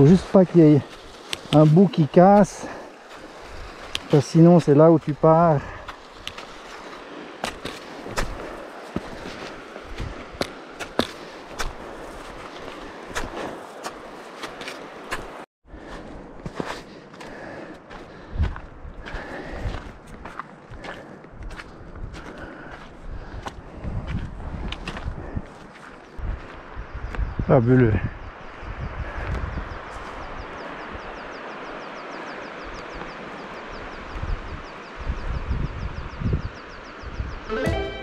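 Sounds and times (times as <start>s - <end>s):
footsteps crunching on snow: 0.0s - 26.6s
footsteps on stony dirt trail: 0.0s - 26.7s.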